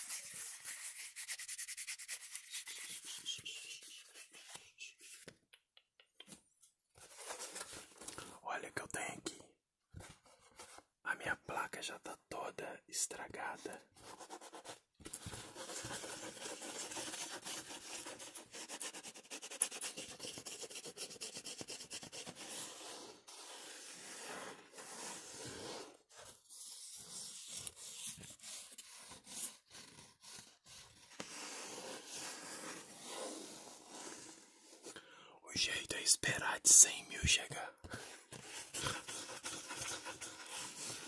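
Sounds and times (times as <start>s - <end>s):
fingernails scratching cardboard: 38.3s - 41.0s.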